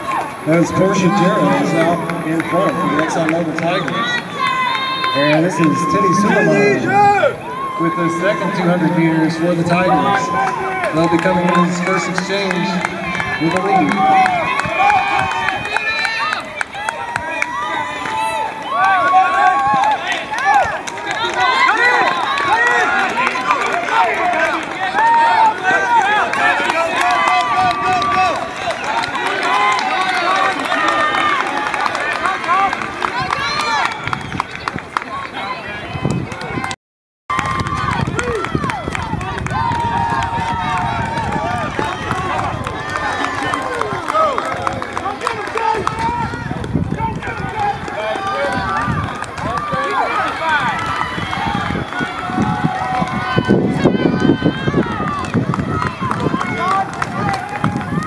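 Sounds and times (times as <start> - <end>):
spectators shouting and cheering: 0.0 - 58.0.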